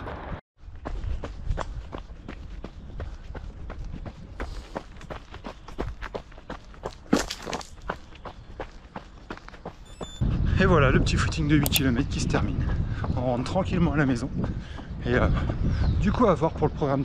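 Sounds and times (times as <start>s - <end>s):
running footsteps on dirt trail: 0.0s - 17.0s.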